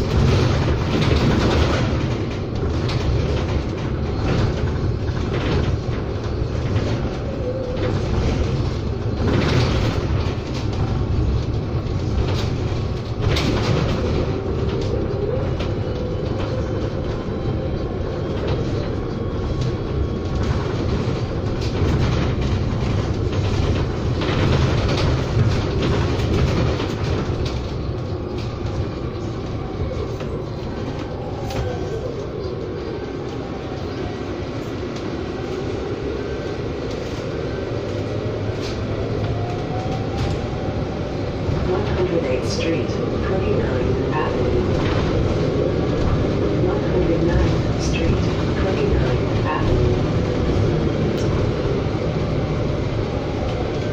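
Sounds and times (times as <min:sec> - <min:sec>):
road rumble: 0:00.0 - 0:53.9.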